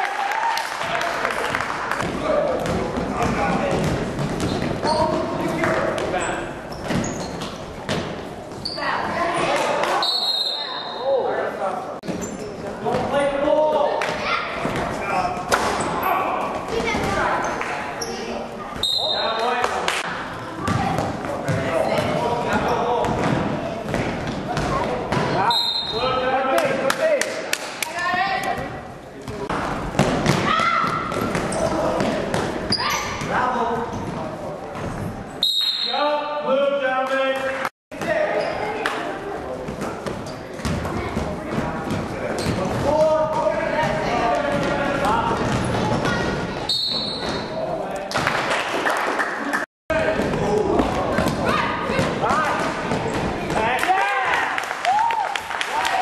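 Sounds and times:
voices and shouts echoing: 0:08.6 - 0:48.1, 0:49.6 - 0:56.0.

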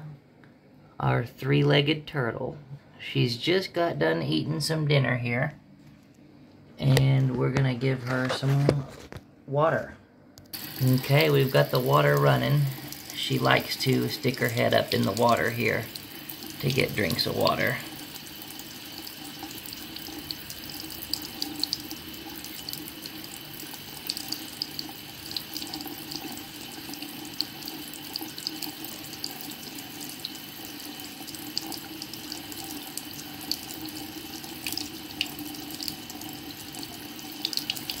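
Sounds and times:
faucet running into sink: 0:10.6 - 0:38.0.

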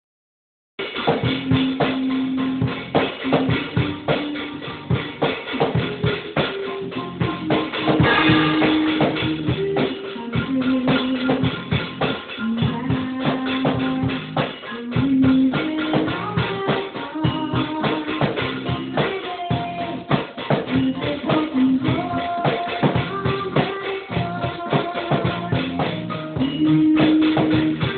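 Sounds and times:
drum kit playing: 0:00.8 - 0:27.9.

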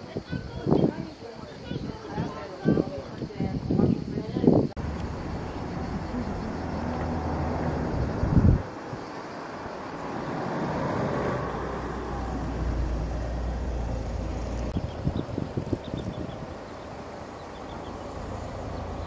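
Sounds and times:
vehicle engine humming: 0:04.8 - 0:19.0.

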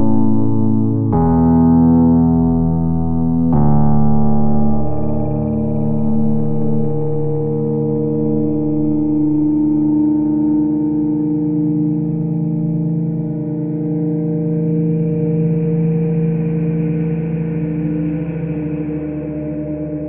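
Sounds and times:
layered synthesizer drone: 0:00.0 - 0:20.0
gong-like ring: 0:04.4 - 0:20.0.

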